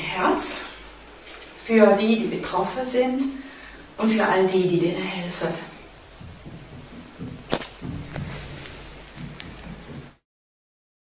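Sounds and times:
phone handling thumps: 6.2 - 10.2.

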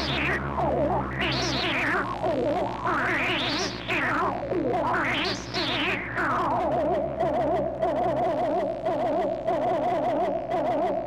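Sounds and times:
warbling synthesizer tone: 0.0 - 11.0.

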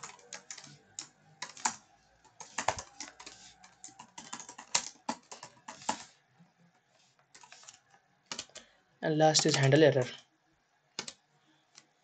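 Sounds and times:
computer keyboard keystrokes: 0.0 - 6.1, 7.4 - 8.6, 11.0 - 11.2.

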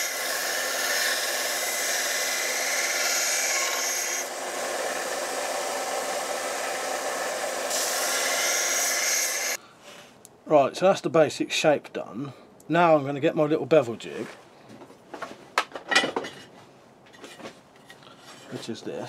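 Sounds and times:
belt sander grinding steel: 0.0 - 9.6.

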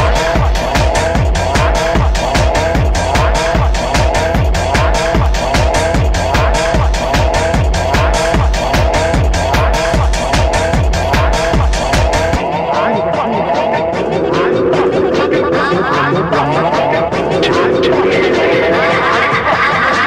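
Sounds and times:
gritty squealing synth riff: 0.0 - 20.0
techno music: 0.0 - 20.0.

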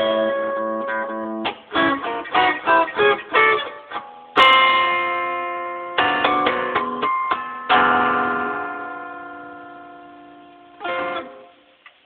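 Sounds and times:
electric guitar chord ringing: 0.0 - 11.8.

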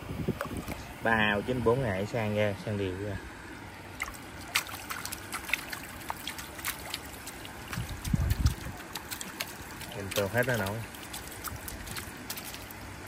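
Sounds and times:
water trickling and dripping: 0.3 - 13.0
small drips and splashes: 3.5 - 13.0.

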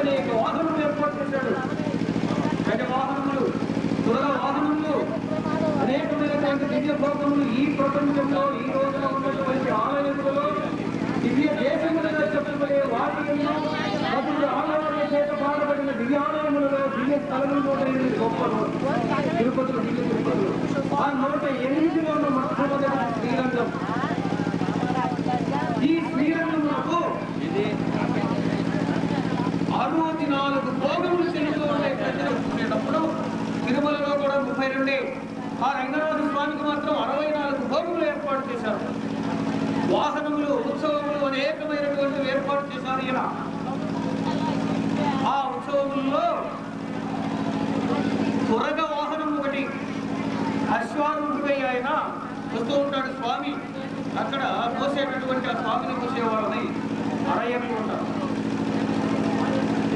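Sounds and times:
people's voices: 0.0 - 59.9
person speaking: 0.0 - 59.9
steady low hum: 0.0 - 59.9.

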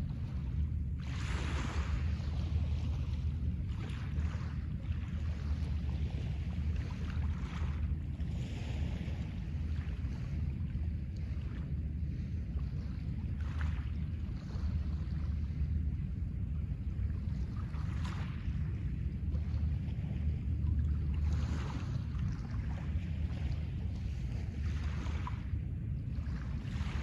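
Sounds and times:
wind rumble on microphone: 0.0 - 27.0.

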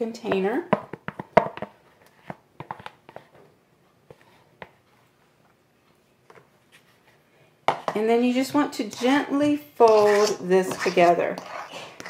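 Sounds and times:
spatula scraping plastic tub: 8.4 - 12.0.

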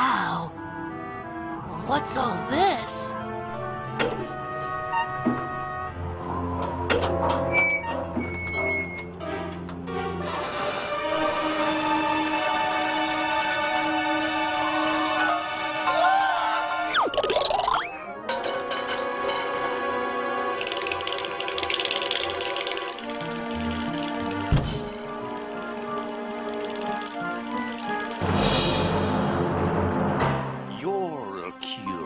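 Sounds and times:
soft background music: 0.0 - 32.0
orchestral strings: 0.7 - 16.9.

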